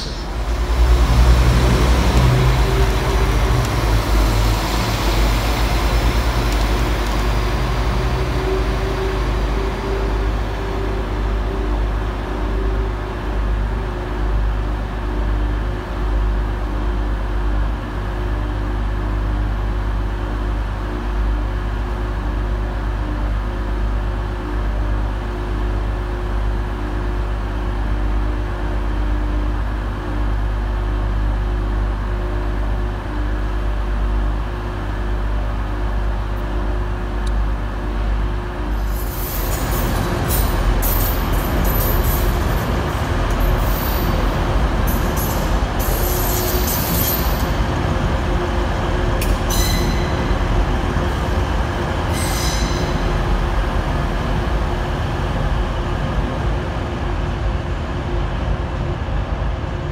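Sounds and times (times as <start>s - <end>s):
train rushing on rails: 0.0s - 22.2s, 22.8s - 59.9s
train engine drone: 0.0s - 59.9s.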